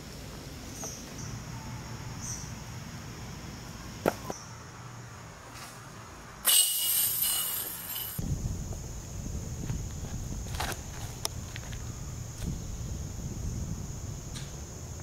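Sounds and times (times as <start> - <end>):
disc striking metal basket: 6.4 - 8.2
harsh high hiss: 6.4 - 9.4
wind rumble on microphone: 8.2 - 15.0.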